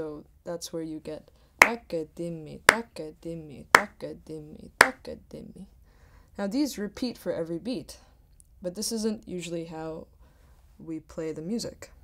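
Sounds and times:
person reciting drum syllables: 1.6s - 5.2s.

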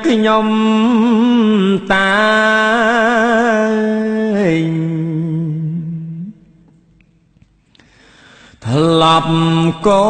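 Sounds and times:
man chanting: 0.0s - 6.4s, 8.6s - 10.0s.

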